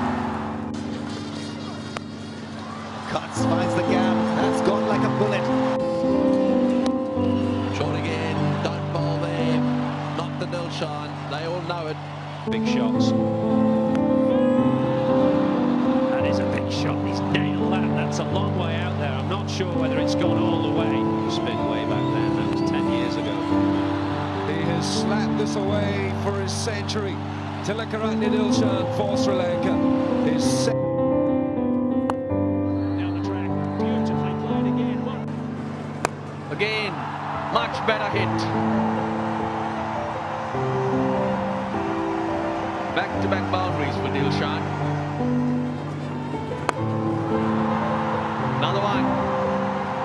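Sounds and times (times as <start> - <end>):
music with long held notes: 0.0 - 11.7, 12.5 - 50.0
crowd noise: 0.0 - 30.7, 32.6 - 50.0
music with held chords: 12.5 - 36.5
cricket bat hitting ball: 36.0 - 36.3, 46.6 - 46.9.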